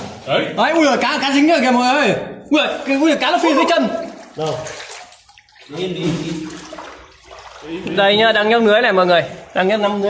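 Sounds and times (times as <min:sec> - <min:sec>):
water sloshing and splashing: 0:02.4 - 0:10.0.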